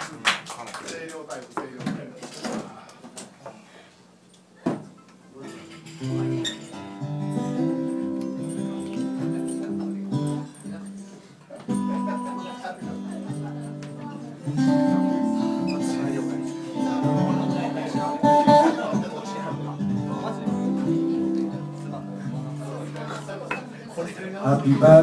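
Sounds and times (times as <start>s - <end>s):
acoustic guitar chords: 5.6s - 23.4s, 24.4s - 25.0s.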